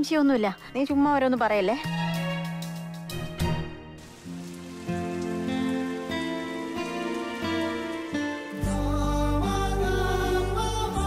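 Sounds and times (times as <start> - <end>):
music with long held notes: 1.9 - 11.0
heavy rain pouring: 4.0 - 11.0.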